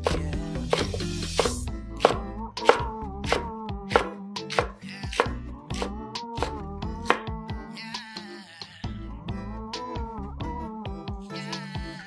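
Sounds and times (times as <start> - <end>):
knife chopping on cutting board: 0.0 - 7.3
background music: 0.0 - 12.0.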